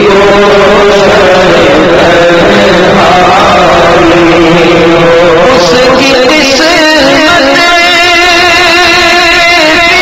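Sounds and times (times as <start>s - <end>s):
men singing long held notes: 0.0s - 10.0s.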